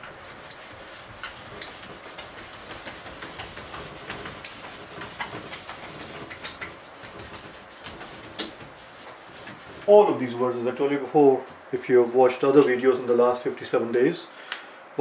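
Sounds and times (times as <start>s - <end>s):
short scrapes and knocks: 0.0s - 10.4s
cloth wiping whiteboard: 0.0s - 10.7s.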